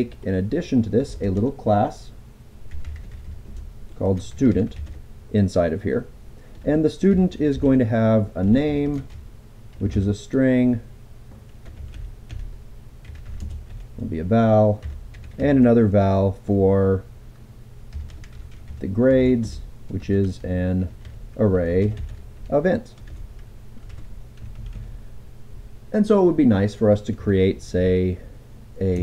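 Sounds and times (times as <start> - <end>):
computer keyboard keys clicking: 2.7 - 3.6, 4.2 - 5.0, 8.8 - 9.8, 11.6 - 13.8, 14.8 - 15.4, 17.9 - 18.8, 21.8 - 22.2, 23.8 - 24.8.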